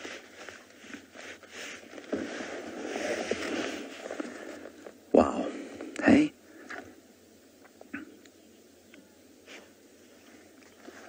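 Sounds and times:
dry grass rustling and scraping: 0:00.0 - 0:05.0, 0:09.4 - 0:11.0.

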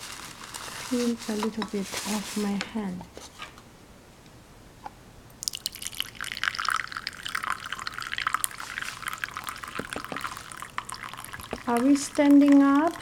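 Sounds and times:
water pouring into a teacup: 0:05.4 - 0:13.0.

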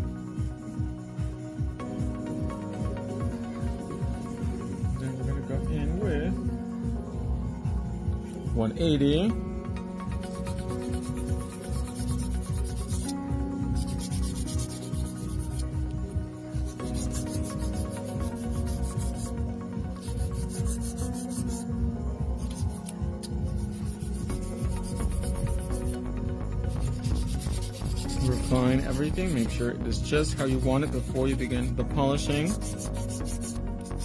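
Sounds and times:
soft background music: 0:00.0 - 0:34.0
nail file rasping on a nail: 0:10.2 - 0:13.2, 0:13.8 - 0:15.8, 0:16.6 - 0:19.3, 0:19.9 - 0:21.6, 0:22.4 - 0:26.0, 0:26.7 - 0:29.5, 0:30.2 - 0:34.0.

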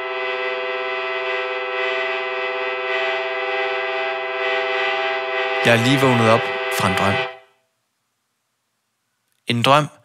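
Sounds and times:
person speaking: 0:05.6 - 0:07.3, 0:09.5 - 0:10.0.

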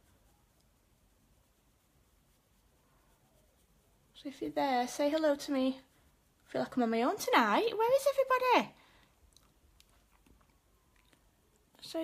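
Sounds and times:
woman speaking: 0:04.2 - 0:08.8, 0:11.8 - 0:12.0
faint clicks: 0:09.3 - 0:11.8.

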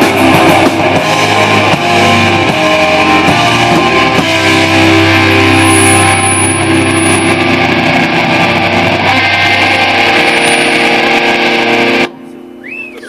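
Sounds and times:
distorted electric guitar chord: 0:00.0 - 0:12.6
rising and falling tone: 0:00.3 - 0:13.0.

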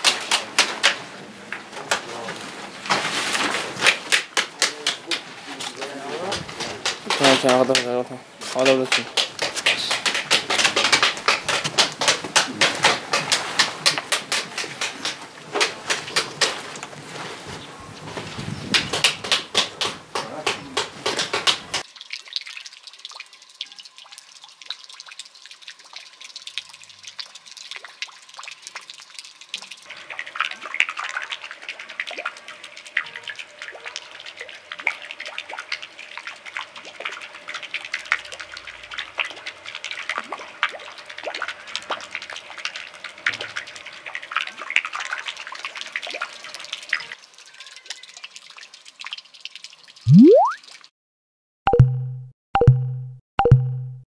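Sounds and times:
fountain water splashing into pool: 0:00.0 - 0:17.0, 0:18.7 - 0:50.9.

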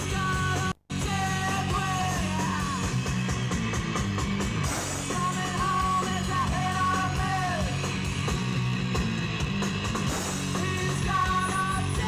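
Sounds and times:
punk rock band playing: 0:00.0 - 0:12.0.

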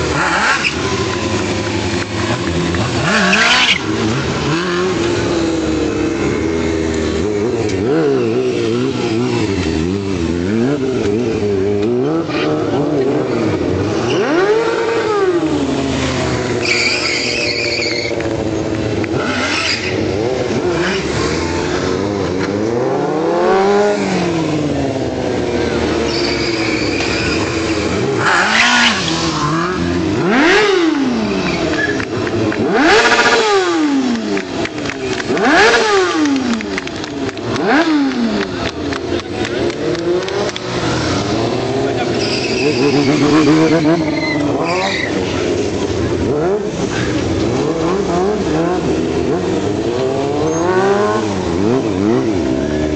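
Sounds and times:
motorcycle engine revving: 0:00.0 - 0:52.9
tyre squeal: 0:03.0 - 0:04.0, 0:16.5 - 0:18.6, 0:19.3 - 0:20.2, 0:26.0 - 0:29.7, 0:31.3 - 0:32.2, 0:42.0 - 0:45.6.

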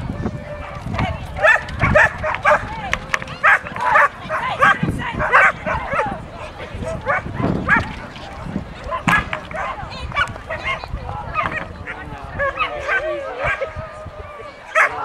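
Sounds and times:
dog barking: 0:01.4 - 0:02.7, 0:03.4 - 0:06.1, 0:07.0 - 0:07.8, 0:12.4 - 0:13.7, 0:14.7 - 0:15.0.

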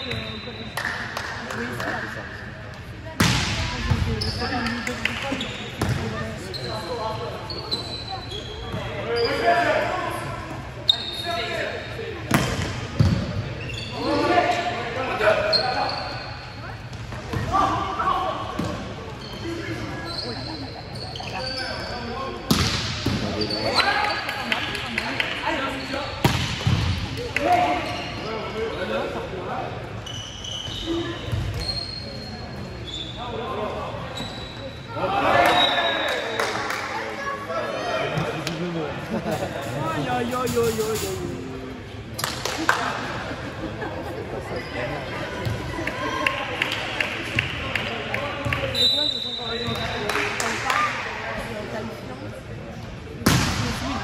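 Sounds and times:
shoe squeaks: 0:04.1 - 0:09.8, 0:10.8 - 0:11.6, 0:13.6 - 0:14.3, 0:15.4 - 0:16.7, 0:19.1 - 0:22.2, 0:23.3 - 0:23.9, 0:27.7 - 0:29.0, 0:30.0 - 0:33.4, 0:34.1 - 0:34.9, 0:48.7 - 0:50.0.

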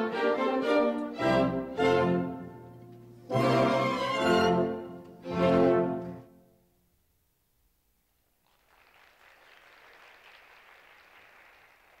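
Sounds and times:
faint audience applause: 0:08.4 - 0:12.0.

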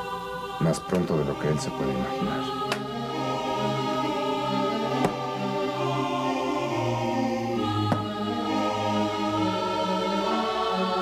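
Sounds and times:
dramatic choir-like score: 0:00.0 - 0:11.0.

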